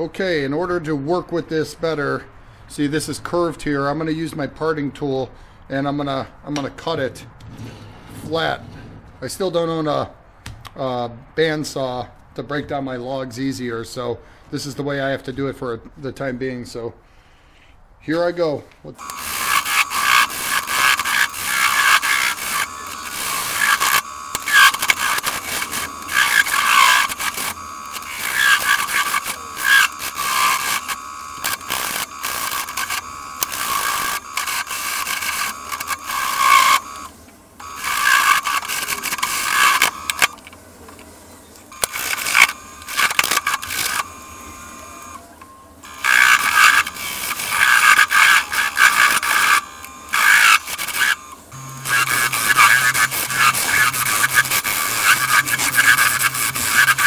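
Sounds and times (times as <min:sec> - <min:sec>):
wood lathe turning: 0:19.0 - 0:41.1, 0:41.7 - 0:57.0
parting tool cutting wood on lathe: 0:19.0 - 0:57.0.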